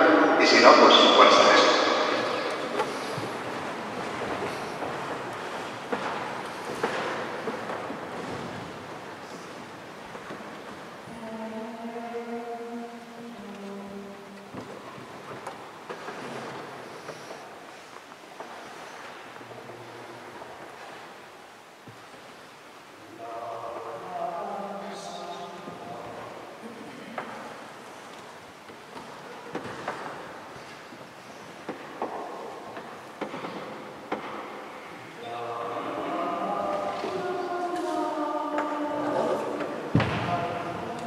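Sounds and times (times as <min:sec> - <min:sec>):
rustling and murmur: 0:00.0 - 0:41.0
choir holding notes: 0:35.2 - 0:41.0
choir singing: 0:35.2 - 0:41.0.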